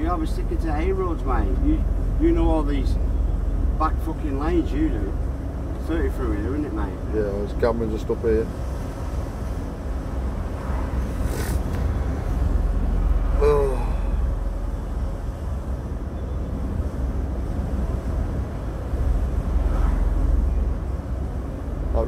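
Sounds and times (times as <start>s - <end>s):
engine and road rumble: 0.0s - 22.0s.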